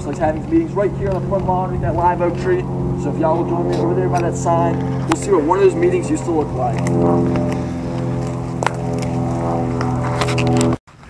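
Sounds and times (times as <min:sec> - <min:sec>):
low droning hum: 0:00.0 - 0:10.8.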